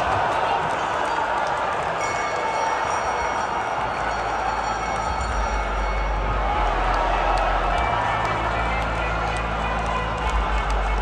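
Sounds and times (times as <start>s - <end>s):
crowd cheering and applauding: 0.0s - 11.0s
low bass music: 3.8s - 11.0s.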